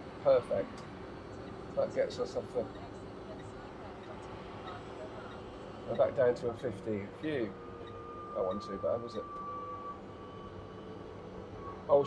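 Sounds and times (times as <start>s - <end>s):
road noise inside car cabin: 0.0s - 12.0s
faint high whine: 0.1s - 12.0s.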